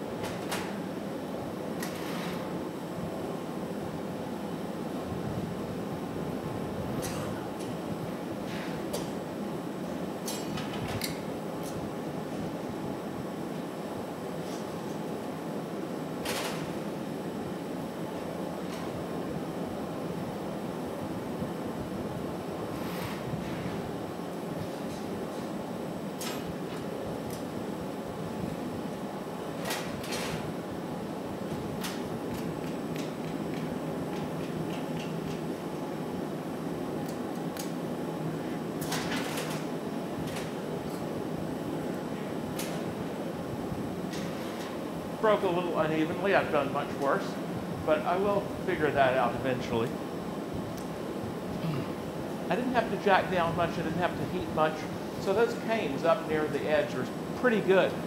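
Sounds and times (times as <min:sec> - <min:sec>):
furnace and ventilation roar: 0:00.0 - 0:58.0.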